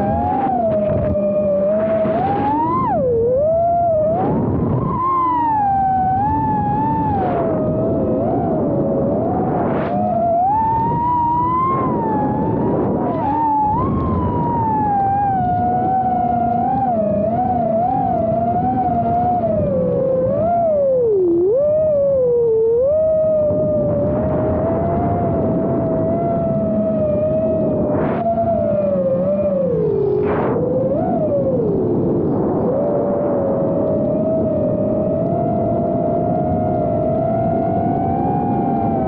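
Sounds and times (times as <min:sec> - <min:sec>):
drone motors whining: 0:00.0 - 0:39.0
rushing wind: 0:00.0 - 0:39.0.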